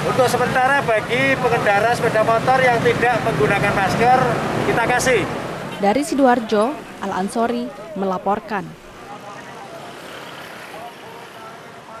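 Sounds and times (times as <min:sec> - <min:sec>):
motorcycles and traffic: 0:00.0 - 0:12.0
faint voices: 0:05.8 - 0:12.0.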